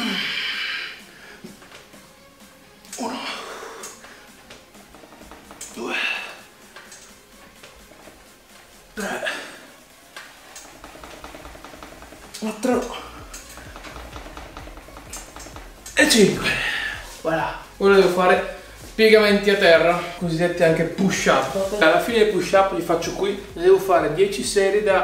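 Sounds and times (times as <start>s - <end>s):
faint background music: 0.0s - 25.0s.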